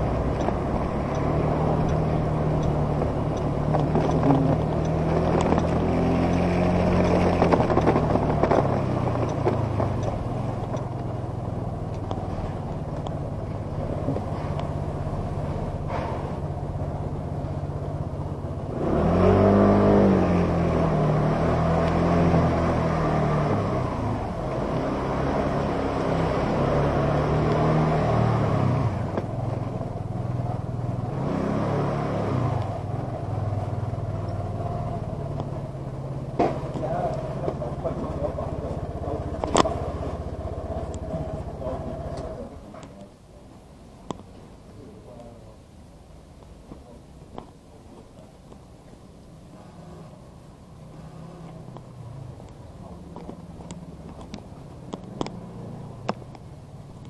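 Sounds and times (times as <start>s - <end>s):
motor scooter engine running: 0.0s - 15.4s, 32.8s - 42.6s.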